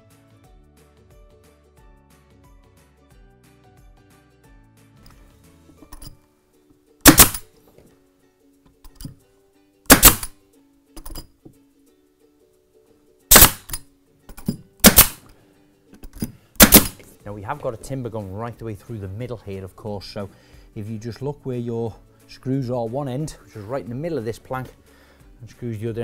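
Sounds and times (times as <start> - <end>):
nail gun shots: 7.0 - 7.5, 9.9 - 10.4, 13.3 - 13.8, 14.8 - 15.3, 16.6 - 17.0.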